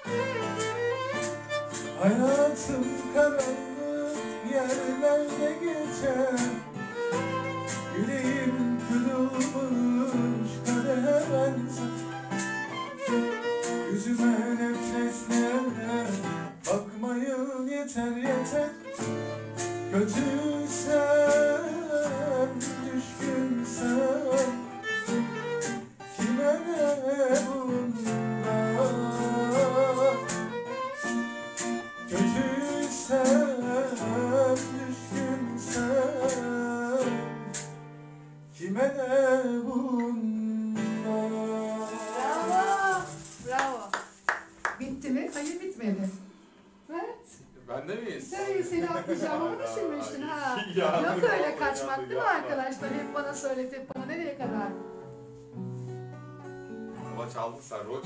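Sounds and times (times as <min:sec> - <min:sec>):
violin: 0:00.0 - 0:16.5, 0:18.2 - 0:37.3
acoustic guitar strumming: 0:00.0 - 0:46.8, 0:48.2 - 0:58.0
person singing into a microphone: 0:01.9 - 0:12.4, 0:13.7 - 0:30.8, 0:31.9 - 0:37.6, 0:38.6 - 0:43.6.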